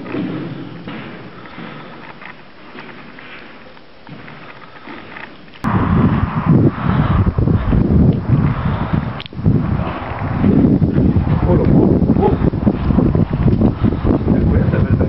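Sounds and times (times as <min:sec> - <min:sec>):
wind buffeting microphone: 0:05.6 - 0:15.0.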